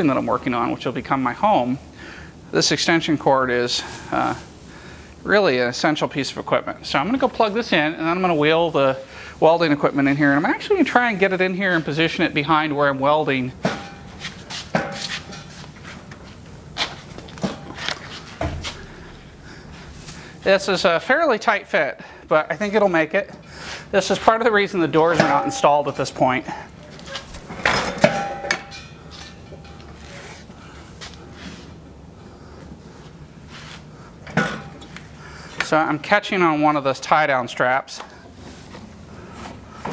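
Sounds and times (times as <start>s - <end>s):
wheeled cart being shoved: 26.9s - 30.2s, 34.3s - 35.0s.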